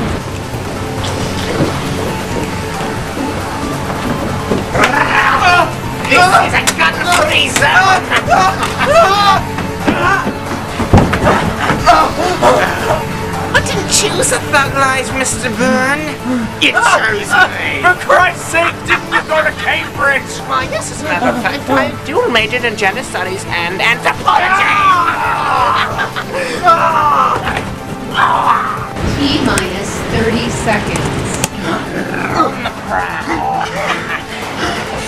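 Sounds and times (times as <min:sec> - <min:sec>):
soundtrack music: 0:00.0 - 0:35.0.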